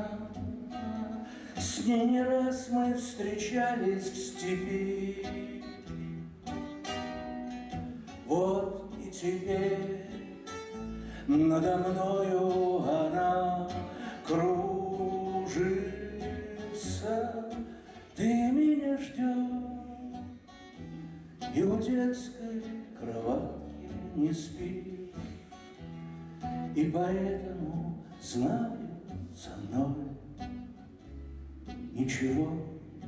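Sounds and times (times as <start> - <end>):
man singing: 0.0 - 5.9, 8.1 - 20.4, 21.4 - 25.6, 26.6 - 30.4, 31.9 - 33.0
acoustic guitar plucked: 0.0 - 33.0.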